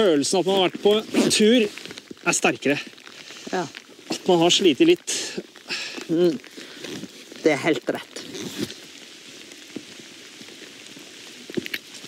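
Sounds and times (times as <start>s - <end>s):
light rain on foliage: 0.0s - 12.0s
rain drop ticks: 0.0s - 12.0s.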